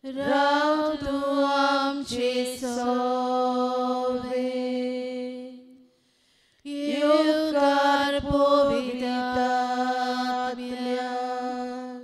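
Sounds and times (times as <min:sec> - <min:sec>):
person singing slow chant: 0:00.0 - 0:05.9, 0:06.6 - 0:12.0.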